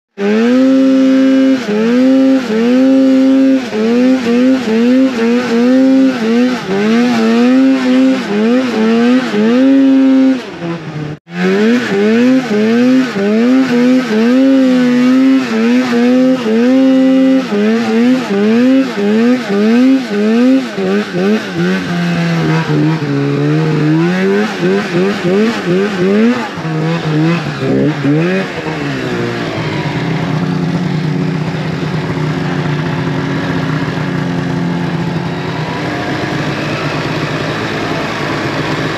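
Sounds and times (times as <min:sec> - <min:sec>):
snowmobile engine revving: 0:00.1 - 0:38.9.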